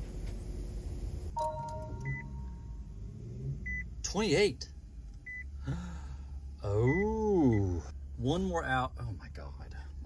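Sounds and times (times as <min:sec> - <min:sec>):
low steady rumble: 0:00.0 - 0:10.0
short high beeps: 0:01.4 - 0:02.7
two-pitch chime tone: 0:01.4 - 0:02.8.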